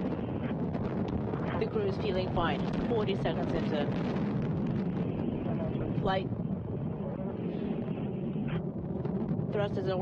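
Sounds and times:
rocket engine low rumble: 0.0s - 10.0s.

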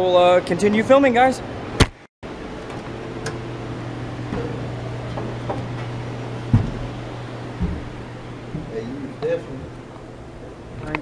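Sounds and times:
steady low hum: 0.2s - 11.0s
faint knocks: 4.3s - 8.8s
loud thump: 6.5s - 7.0s.

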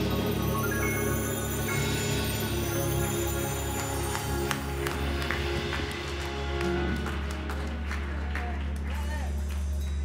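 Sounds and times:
keyboard and drum kit music: 0.0s - 8.8s.

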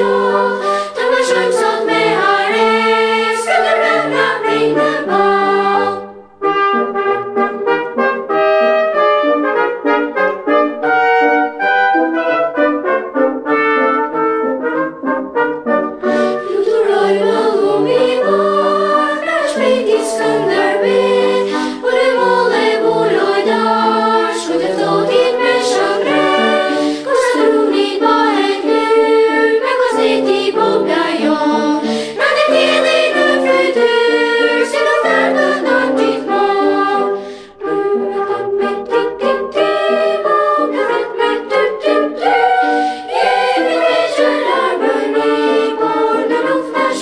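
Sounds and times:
children's choir singing: 0.0s - 8.8s, 16.0s - 47.0s.

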